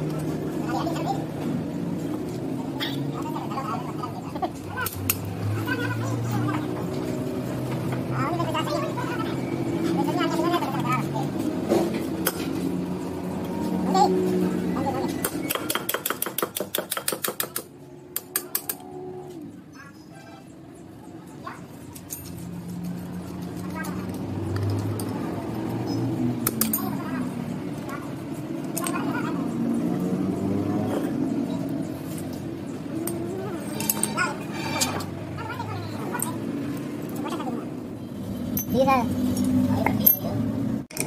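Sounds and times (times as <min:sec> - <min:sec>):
voices talking: 0:00.0 - 0:16.4, 0:17.7 - 0:41.0.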